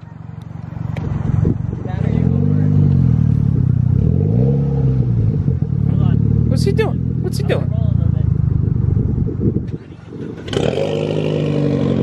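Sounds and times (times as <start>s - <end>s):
car engine revving: 1.0s - 12.0s.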